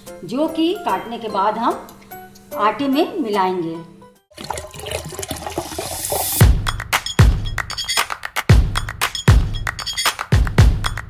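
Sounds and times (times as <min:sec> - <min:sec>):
deep kick drum beat: 0:06.4 - 0:07.7, 0:08.5 - 0:09.7, 0:10.4 - 0:11.0.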